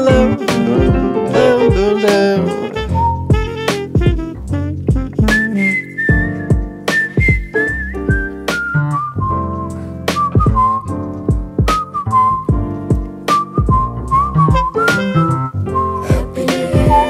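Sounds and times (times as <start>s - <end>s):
drum beat: 0.0s - 8.7s, 9.3s - 15.2s, 16.1s - 17.0s
acoustic bass: 0.0s - 17.0s
chords: 0.0s - 17.0s
whistled melody: 0.0s - 17.0s.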